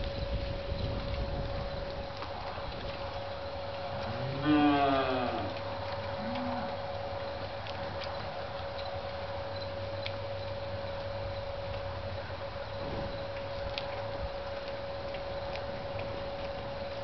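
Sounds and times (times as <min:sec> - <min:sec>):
faint steady hum: 0:00.0 - 0:17.0
cow mooing: 0:04.0 - 0:05.6, 0:06.2 - 0:06.8.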